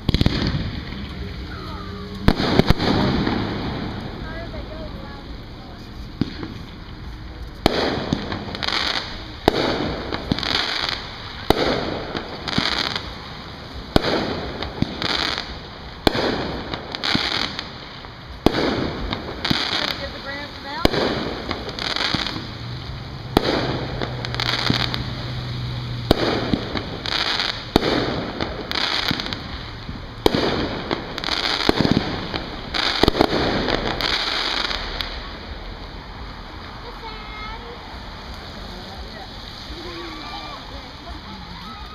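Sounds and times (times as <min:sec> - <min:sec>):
fireworks bursting: 0:00.0 - 0:41.9.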